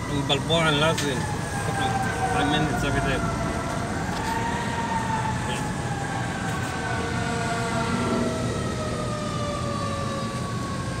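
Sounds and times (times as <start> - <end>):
fire engine siren wail: 0.0 - 11.0
idling traffic rumble: 0.0 - 11.0.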